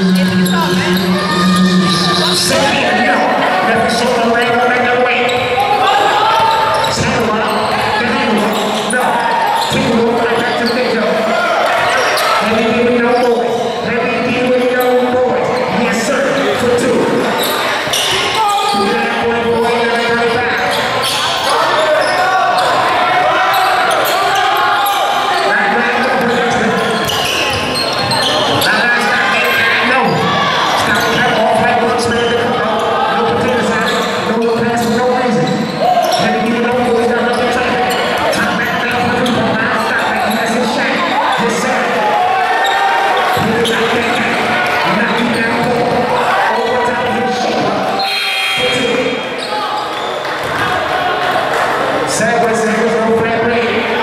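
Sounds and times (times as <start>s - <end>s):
calls and chatter of people: 0.0s - 54.0s.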